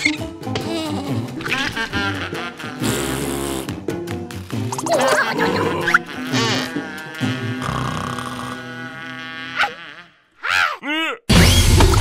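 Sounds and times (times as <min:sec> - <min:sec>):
background music: 0:00.0 - 0:09.1.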